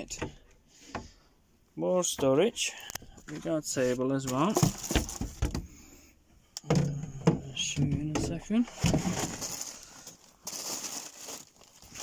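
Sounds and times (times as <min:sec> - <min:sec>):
man speaking: 0:06.9 - 0:08.8.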